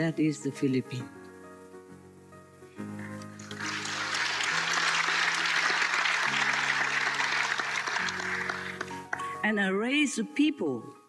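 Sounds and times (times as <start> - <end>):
soft background music chords: 0.0 - 11.0
audience applause: 3.4 - 9.4.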